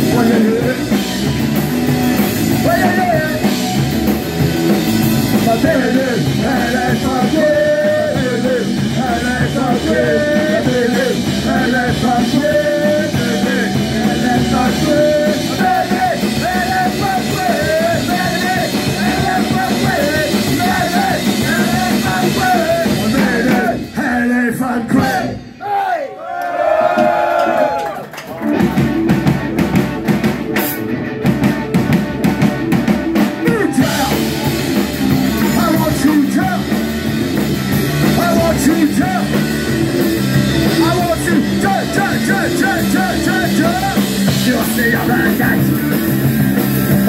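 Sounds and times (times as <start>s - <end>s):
singer shouting vocals: 0.0s - 1.0s, 2.5s - 3.6s, 5.3s - 28.0s, 33.3s - 36.8s, 38.0s - 39.4s, 40.6s - 46.3s
crowd singing along: 0.0s - 1.1s, 5.3s - 25.9s, 40.5s - 47.0s
electric guitars: 0.0s - 24.3s, 28.1s - 47.0s
bass guitar: 0.0s - 25.6s, 26.7s - 47.0s
band instruments: 0.0s - 47.0s
drums: 0.0s - 47.0s
crowd shouting together: 25.0s - 28.1s.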